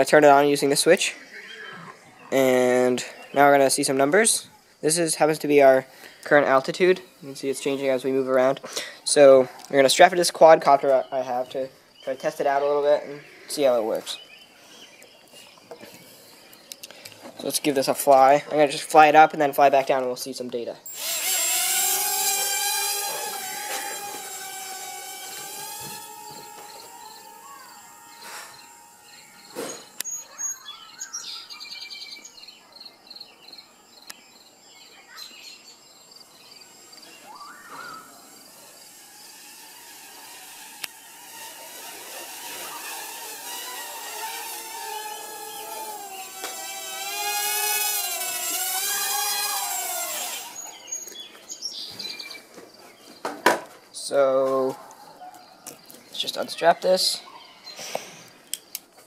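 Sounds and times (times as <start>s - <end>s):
quadcopter propellers whining: 20.9s - 31.1s, 36.7s - 51.1s.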